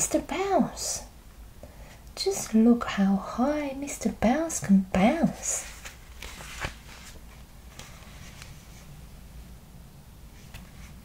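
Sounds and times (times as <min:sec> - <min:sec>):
faint handling noises: 0:05.4 - 0:09.0, 0:10.3 - 0:11.0
paper pages turning: 0:05.6 - 0:08.8.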